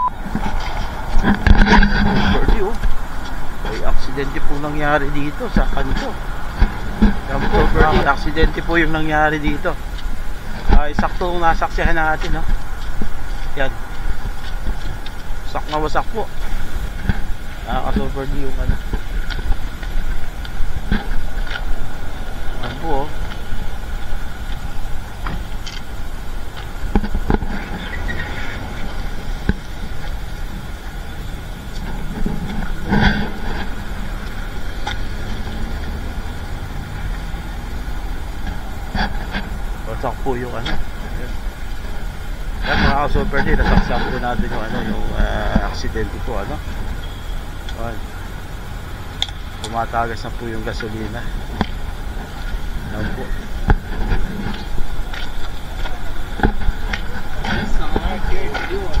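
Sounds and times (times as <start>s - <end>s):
vehicle engine rumbling: 0.0s - 59.0s
faint high whine: 7.2s - 59.0s.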